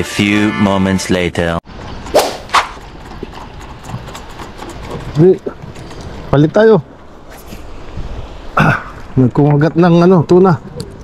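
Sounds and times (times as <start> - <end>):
wind and sea: 1.7 - 11.0.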